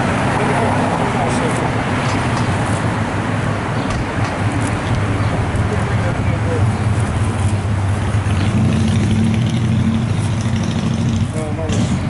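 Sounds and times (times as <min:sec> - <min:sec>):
vehicle engine humming: 0:00.0 - 0:12.0.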